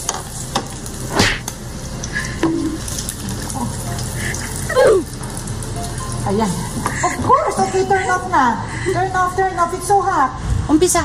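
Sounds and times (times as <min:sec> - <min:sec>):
egg sizzling in a frying pan: 0:00.0 - 0:08.7.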